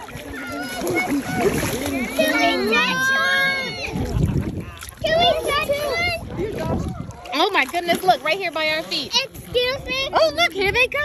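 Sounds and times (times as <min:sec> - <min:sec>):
excited voices: 0:00.0 - 0:07.5
sea water splashing: 0:00.0 - 0:11.0.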